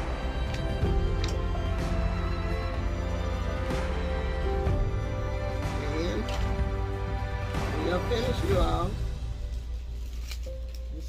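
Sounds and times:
sustained background music: 0.0 - 11.0
ribbon rustling: 9.2 - 11.0.

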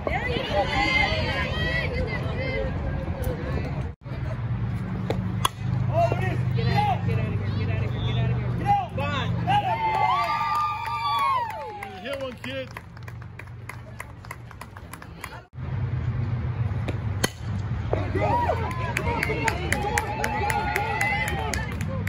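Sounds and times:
spectators shouting and cheering: 0.0 - 3.8, 5.9 - 12.7, 17.8 - 22.0
bat striking ball: 5.0 - 6.2, 16.8 - 18.1
people clapping: 9.7 - 15.6, 18.3 - 22.0.

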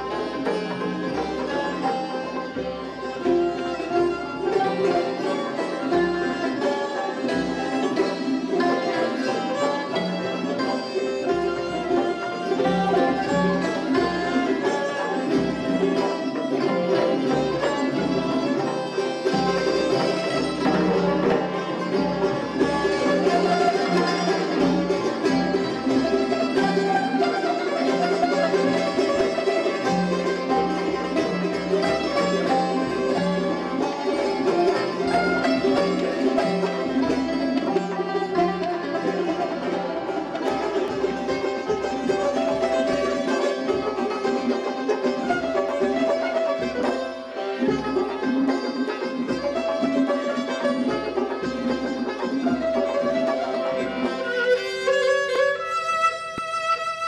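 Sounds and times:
bowed string instrument: 0.0 - 57.0
hammered dulcimer: 0.0 - 57.0
hand drum: 0.0 - 57.0
plucked lute: 0.0 - 57.0.

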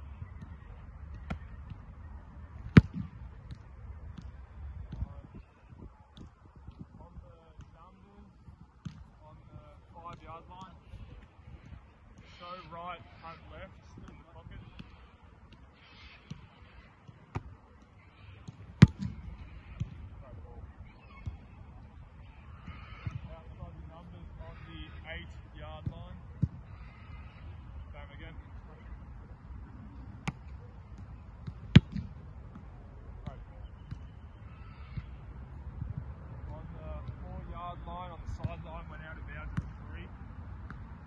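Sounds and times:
foot kicking a football: 2.7 - 4.3, 18.4 - 20.0, 31.4 - 34.0.

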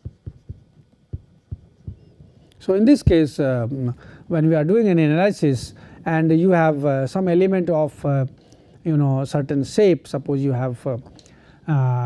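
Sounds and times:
stylus tapping on tablet: 0.0 - 2.2.

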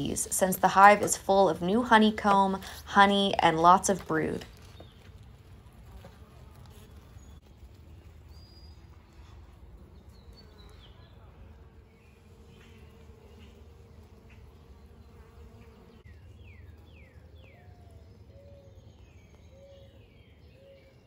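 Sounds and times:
bird chirping: 0.0 - 11.3, 11.9 - 21.0
bees buzzing: 0.0 - 18.1.

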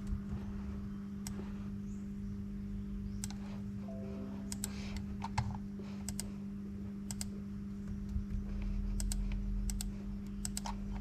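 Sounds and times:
low electrical hum: 0.0 - 11.0
sharp clicks: 3.2 - 3.4, 4.5 - 6.3, 9.0 - 11.0.

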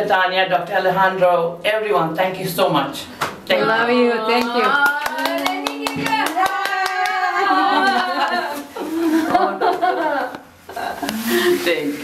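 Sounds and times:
woman clapping hands: 4.4 - 7.3.

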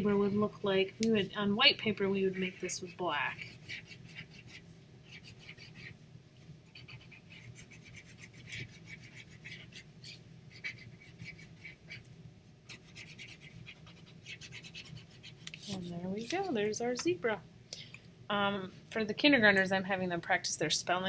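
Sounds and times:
pencil scratching on paper: 2.2 - 5.9, 6.7 - 12.0, 12.7 - 16.6.

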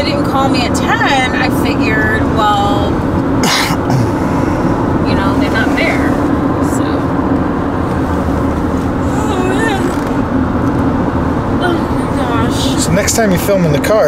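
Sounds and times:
road and tyre noise in car: 0.0 - 14.0
low drone: 1.9 - 10.2.

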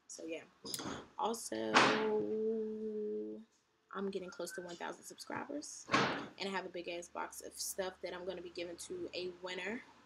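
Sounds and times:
woman humming: 2.3 - 3.4.

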